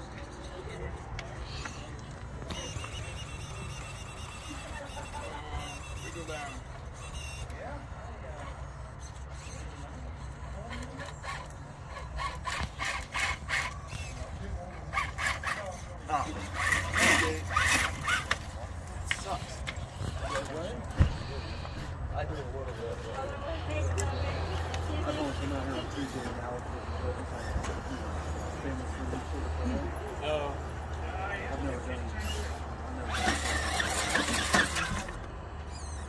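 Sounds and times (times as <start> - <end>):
electric motor and gear whine: 0.0 - 36.0
faint voices: 0.0 - 36.0.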